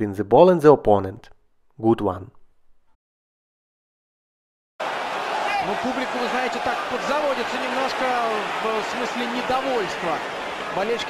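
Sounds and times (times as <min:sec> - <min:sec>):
stadium crowd noise: 0:04.8 - 0:11.0
man commentating: 0:05.4 - 0:11.0.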